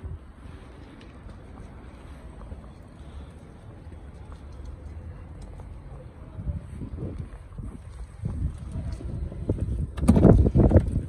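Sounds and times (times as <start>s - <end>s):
wind buffeting microphone: 6.2s - 11.0s.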